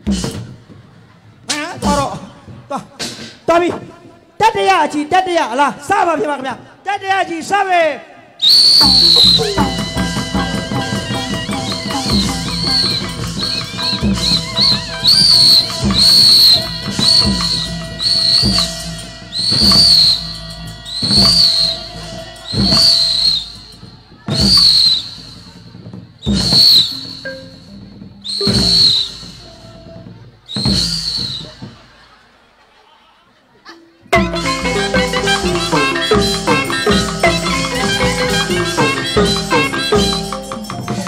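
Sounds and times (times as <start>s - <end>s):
traditional ensemble music: 0.0s - 4.3s, 8.4s - 32.6s, 33.7s - 41.0s
shrill whistle blasts: 8.4s - 25.6s, 26.2s - 29.9s, 30.5s - 31.9s.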